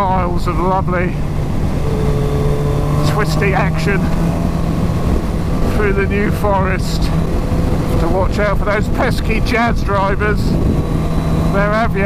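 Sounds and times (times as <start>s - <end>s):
motorcycle engine droning: 0.0s - 12.0s
wind rushing over microphone: 0.0s - 12.0s
faint high steady tone: 1.8s - 3.8s.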